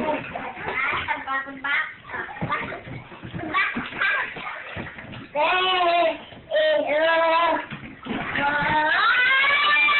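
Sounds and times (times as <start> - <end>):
small child singing: 5.4 - 7.7, 8.3 - 9.9.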